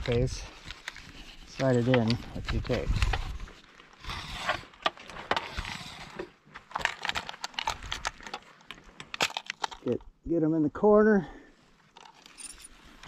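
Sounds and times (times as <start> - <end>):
brushing scrape: 2.9 - 4.8, 5.4 - 6.3.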